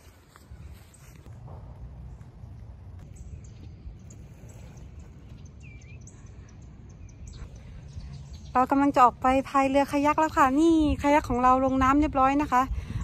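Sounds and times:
steady low rumble: 0.0 - 13.0
bird chirp: 2.0 - 9.2.

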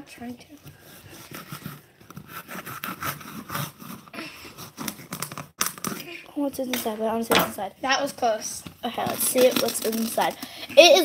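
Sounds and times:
knife sawing through ball cover: 0.7 - 5.5.

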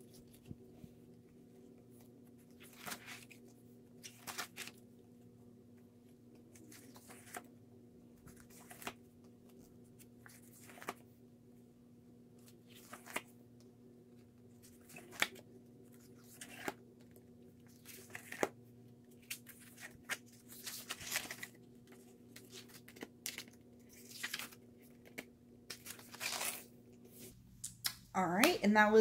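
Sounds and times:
paper pages flipping: 1.8 - 4.8, 6.3 - 7.5, 8.2 - 11.1, 12.4 - 13.4, 14.6 - 27.9.

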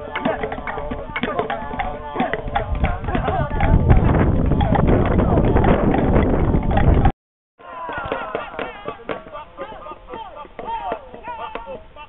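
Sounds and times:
voices calling out in sliding cries: 7.6 - 12.0.

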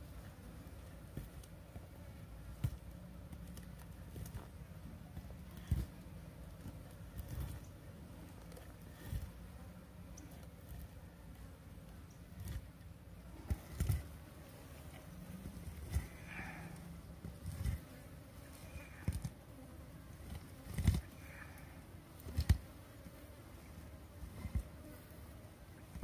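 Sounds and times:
insects buzzing: 0.0 - 26.0.

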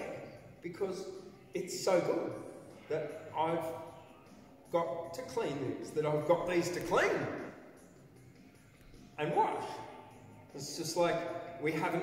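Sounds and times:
man's voice in large hall: 0.0 - 3.9, 4.7 - 7.6, 10.5 - 12.0.

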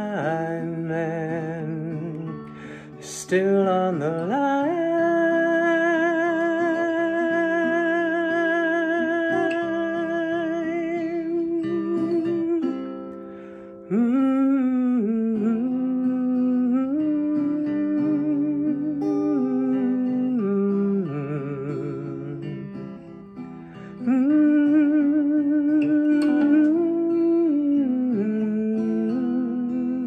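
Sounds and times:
man humming a melody: 0.0 - 12.9, 13.9 - 23.0, 23.8 - 30.0
man singing with vibrato: 0.0 - 13.0, 13.9 - 23.0, 23.6 - 30.0
acoustic guitar: 0.0 - 30.0.

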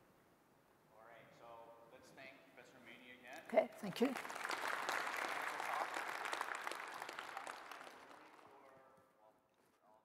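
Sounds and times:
audience applauding: 3.4 - 8.9.

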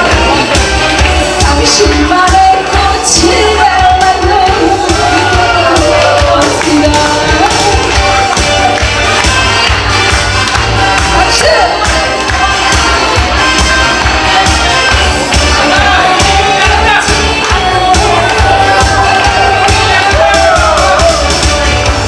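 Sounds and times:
backing track with steady beat: 0.0 - 22.0
woman singing into microphone: 1.4 - 8.0, 11.1 - 20.4.

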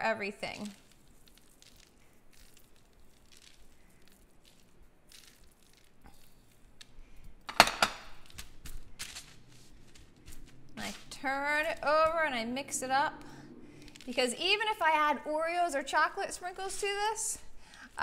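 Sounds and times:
sprinkles pattering on popcorn: 0.0 - 7.5, 8.2 - 12.4, 13.8 - 14.9
hands crunching popcorn: 0.5 - 7.5, 8.2 - 12.2.

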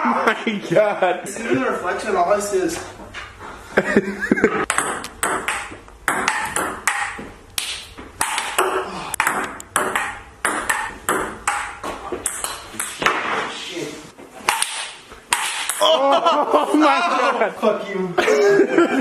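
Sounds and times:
ping-pong ball hitting paddles and table: 4.6 - 13.5, 14.4 - 15.9.

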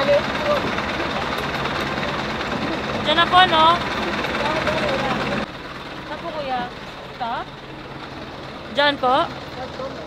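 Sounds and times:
minibus engine idling: 0.0 - 10.0.

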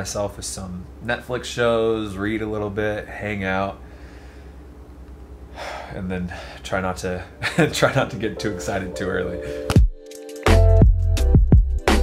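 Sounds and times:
man speaking: 0.0 - 3.8, 5.9 - 9.7
low steady hum: 0.0 - 9.8.

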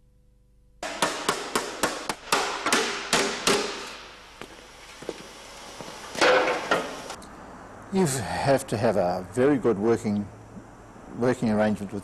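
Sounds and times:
hammer striking sheet metal: 0.8 - 4.2.

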